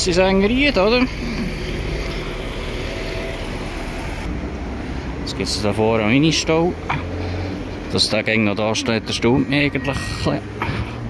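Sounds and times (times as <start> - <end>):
bus driving past: 0.0 - 9.3
road traffic: 0.0 - 11.0.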